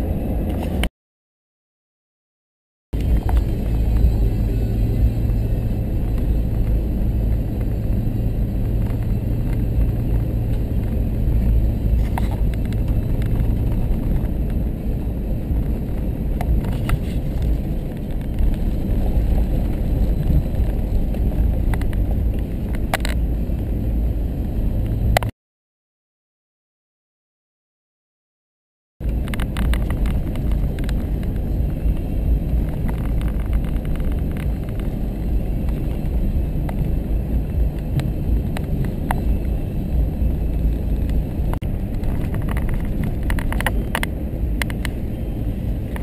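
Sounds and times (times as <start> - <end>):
vehicle engine and road rumble: 0.0 - 0.9, 2.9 - 25.3, 29.0 - 46.0.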